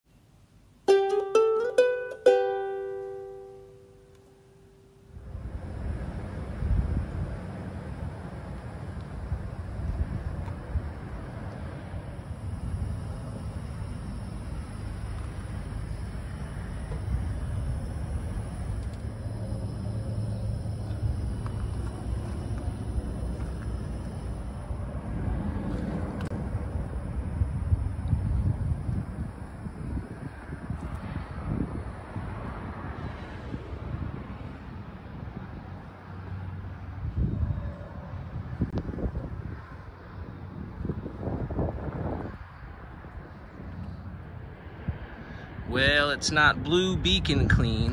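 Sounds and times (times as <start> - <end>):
plucked-string jingle: 0.9 - 4.7
faint low hum: 2.3 - 32.1
wind rumble on microphone: 5.1 - 47.9.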